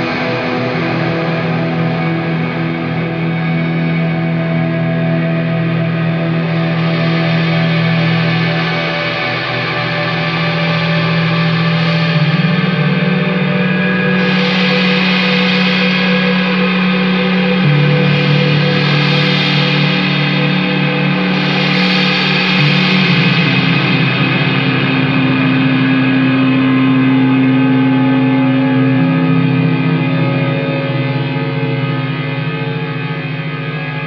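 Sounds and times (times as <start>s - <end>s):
distorted electric guitars: 0.0s - 34.0s.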